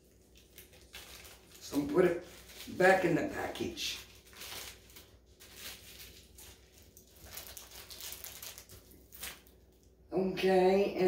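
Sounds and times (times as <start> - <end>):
plastic package crinkling: 0.0 - 10.0.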